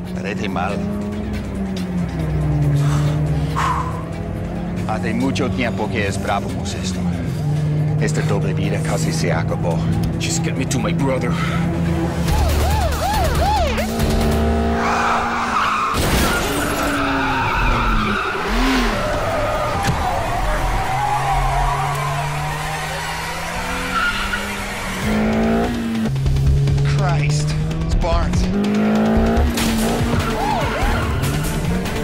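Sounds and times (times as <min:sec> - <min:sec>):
car engines revving: 0:00.0 - 0:32.0
film score: 0:00.0 - 0:32.0
police siren wailing: 0:12.2 - 0:14.0, 0:14.7 - 0:25.0, 0:30.0 - 0:31.8
tyres squealing: 0:14.8 - 0:25.0.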